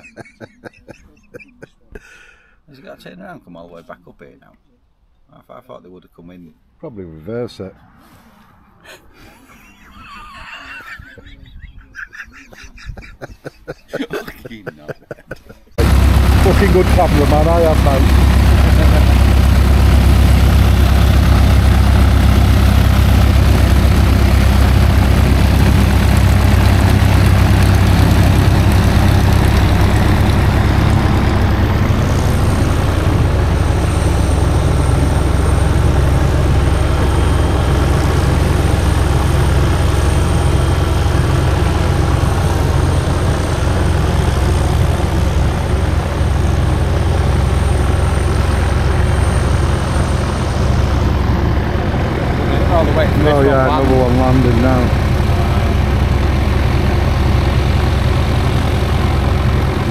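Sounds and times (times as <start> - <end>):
propeller aircraft engine droning: 15.7 - 59.9.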